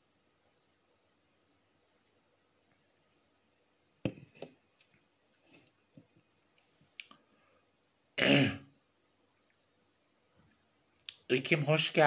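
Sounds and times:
woman clearing her throat: 8.2s - 8.7s.

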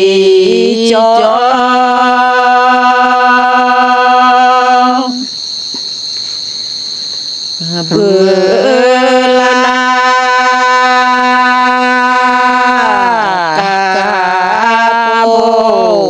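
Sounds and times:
person singing long notes: 0.0s - 5.3s, 7.6s - 16.0s
steady high-pitched tone: 0.0s - 16.0s.

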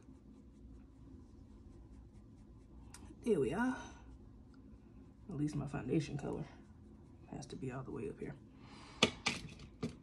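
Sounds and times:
makeup brush swishing on skin: 0.0s - 8.3s.

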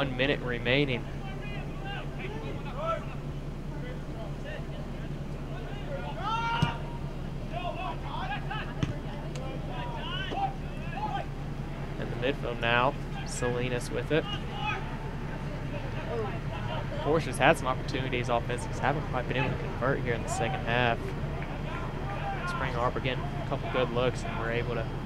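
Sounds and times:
players shouting and calling: 0.0s - 25.0s
steady low hum: 0.0s - 25.0s.

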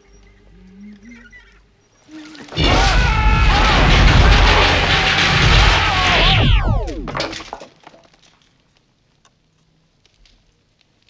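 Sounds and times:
crackling electrical blast: 2.6s - 7.6s.

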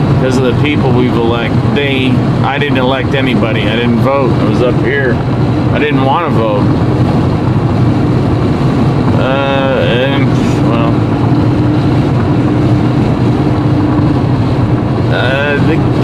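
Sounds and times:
car road noise drone: 0.0s - 16.0s.

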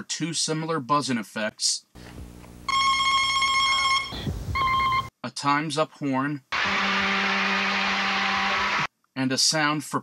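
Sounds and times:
electronic buzzer: 2.6s - 5.1s, 6.6s - 8.9s.

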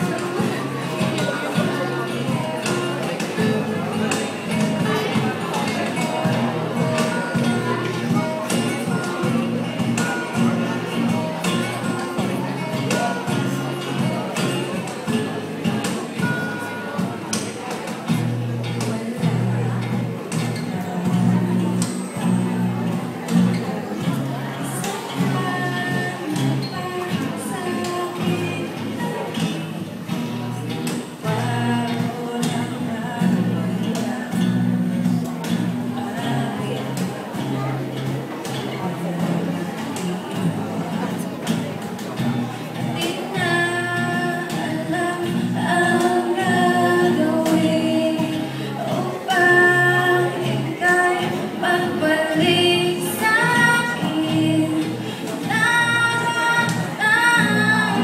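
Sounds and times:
acoustic guitars playing chords: 0.0s - 58.0s
girls singing: 43.0s - 58.0s.

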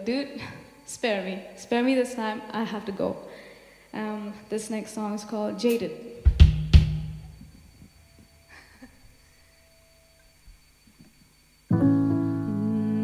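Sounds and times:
kick drum and cymbal hits: 6.2s - 7.5s.

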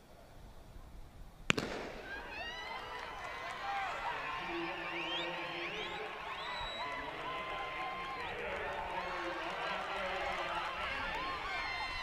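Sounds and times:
spectators cheering and shouting: 2.1s - 12.0s.

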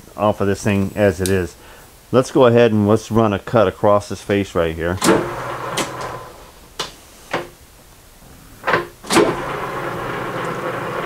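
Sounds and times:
sharp metallic clicks and clunks: 5.0s - 6.2s
lathe running steadily: 5.0s - 6.4s, 9.1s - 11.0s
lathe drive engaging clunk: 5.0s - 7.5s, 8.6s - 11.0s.

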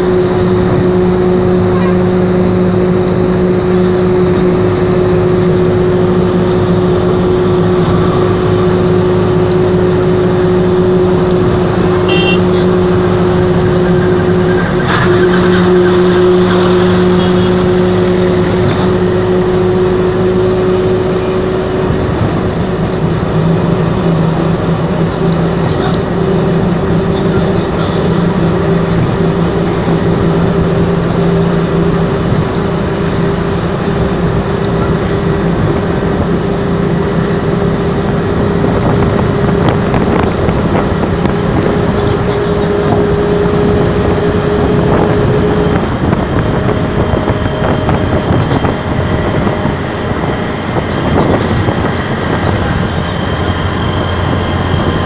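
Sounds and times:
truck passing: 0.0s - 55.0s
tyre and wind noise: 0.0s - 55.0s
vehicle engine drone: 0.0s - 55.0s.

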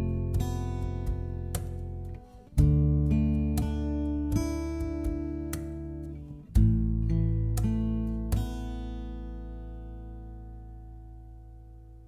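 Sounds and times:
strummed acoustic guitar chords: 0.0s - 11.9s.

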